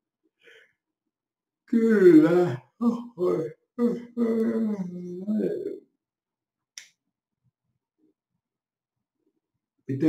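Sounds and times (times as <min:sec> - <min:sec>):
man yawning: 0:01.7 - 0:05.8.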